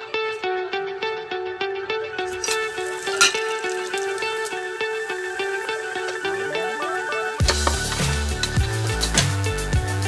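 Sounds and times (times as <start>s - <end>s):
plucked guitar music: 0.0s - 10.0s.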